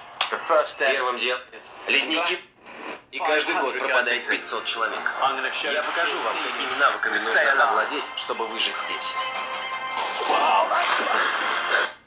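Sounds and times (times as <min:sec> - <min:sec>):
man's voice: 0:03.2 - 0:09.4, 0:10.2 - 0:11.4
music from phone loudspeakers: 0:04.4 - 0:12.0.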